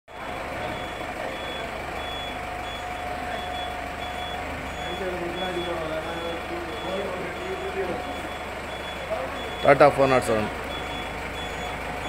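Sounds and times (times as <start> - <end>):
bus engine idling: 0.1 - 12.0
electronic beeper: 0.6 - 10.0.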